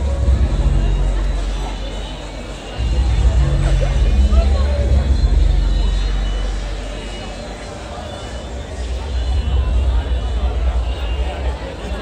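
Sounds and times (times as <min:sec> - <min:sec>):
steady low rumble: 0:00.0 - 0:07.0, 0:08.8 - 0:11.6
babble of many voices: 0:00.0 - 0:12.0.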